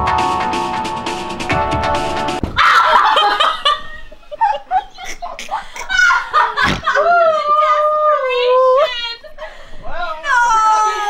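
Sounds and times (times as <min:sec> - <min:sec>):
background music: 0:00.0 - 0:02.6
young women laughing: 0:02.5 - 0:09.6.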